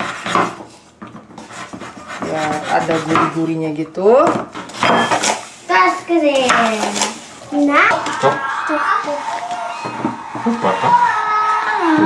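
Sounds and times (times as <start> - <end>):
indistinct voices: 7.5 - 12.0.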